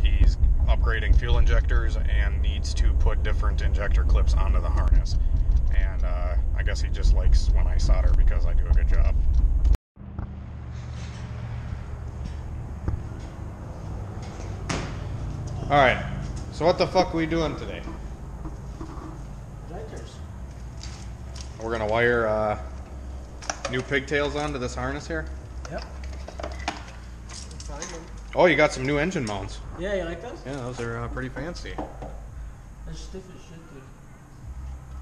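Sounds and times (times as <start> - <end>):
low mechanical hum: 0.0 - 35.0.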